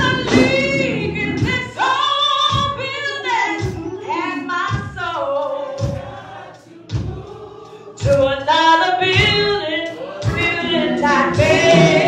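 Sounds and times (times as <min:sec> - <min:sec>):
choir voices singing: 0:00.0 - 0:02.0, 0:05.1 - 0:12.0
woman singing gospel: 0:00.0 - 0:12.0.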